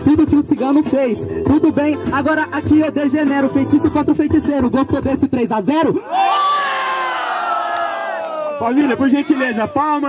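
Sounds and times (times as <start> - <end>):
crowd shouting together: 6.0 - 9.8.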